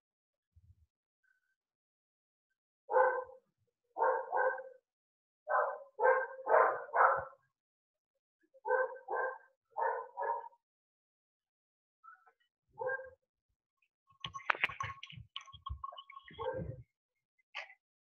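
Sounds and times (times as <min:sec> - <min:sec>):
dog barking: 0:02.9 - 0:03.4, 0:04.0 - 0:04.8, 0:05.5 - 0:07.4, 0:08.6 - 0:10.6, 0:12.8 - 0:13.2, 0:16.3 - 0:16.8.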